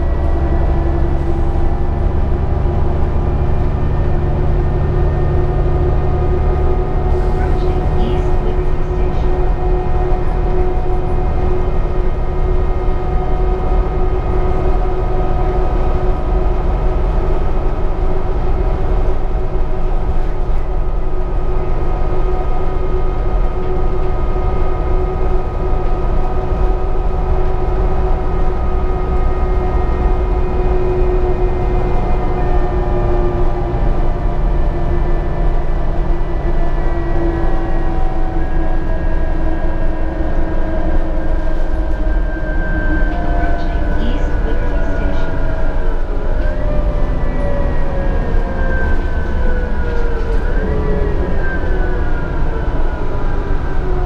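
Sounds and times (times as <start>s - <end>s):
bus interior rumble: 0.0s - 54.0s.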